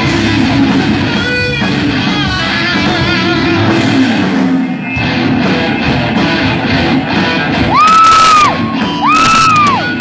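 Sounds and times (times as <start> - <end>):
live rock band: 0.0 - 10.0.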